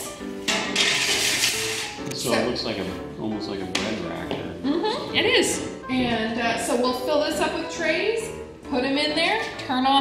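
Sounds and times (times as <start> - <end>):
background music: 0.0 - 10.0
metal tray scraping onto rack: 0.5 - 2.0.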